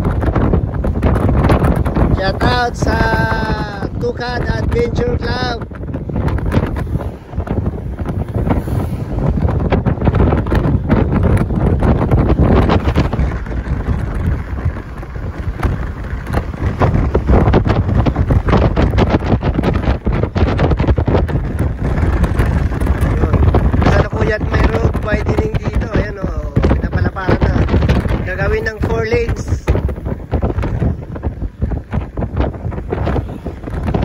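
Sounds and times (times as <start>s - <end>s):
road and engine noise: 0.0s - 34.0s
wind blowing over microphone: 0.0s - 34.0s.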